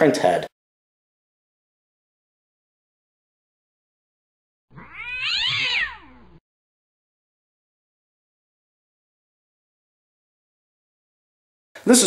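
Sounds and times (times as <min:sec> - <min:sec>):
cat meowing: 0:04.7 - 0:06.4.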